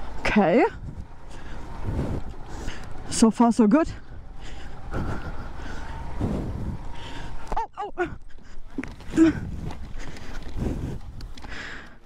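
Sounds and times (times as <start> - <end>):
motorcycle engine running: 0.0 - 11.5.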